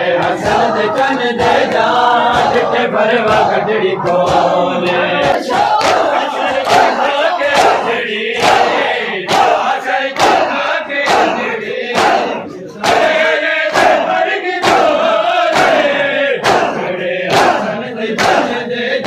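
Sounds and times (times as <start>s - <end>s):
men chanting: 0.0s - 19.0s
hands slapping chests: 0.2s - 18.6s.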